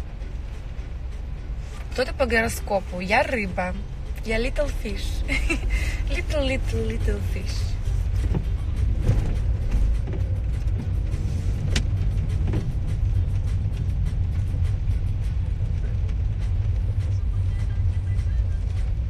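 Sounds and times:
car cabin road and engine rumble: 0.0 - 19.0.

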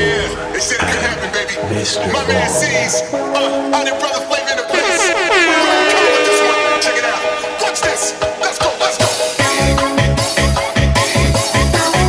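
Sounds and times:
sustained synth chords: 0.0 - 8.8
horn-like synth gliding down: 0.2 - 8.6.

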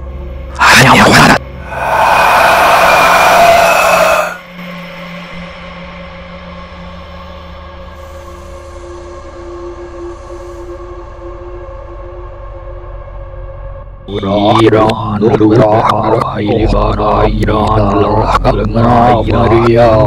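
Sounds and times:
low ominous drone: 0.6 - 4.6.

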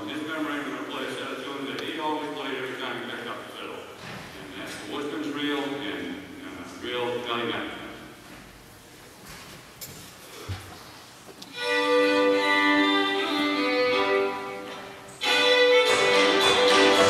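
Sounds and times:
fiddle bowing long notes: 11.5 - 17.0.

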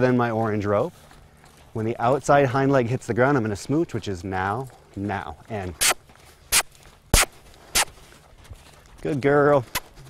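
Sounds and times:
lip kiss clicks: 5.8 - 7.9.

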